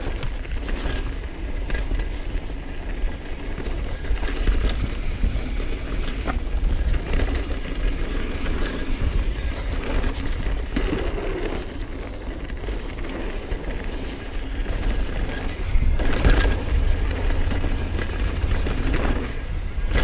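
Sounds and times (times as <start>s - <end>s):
bike rattling over bumps: 0.0s - 20.0s
tyres rolling over dirt: 0.0s - 20.0s
wind buffeting microphone: 0.0s - 20.0s.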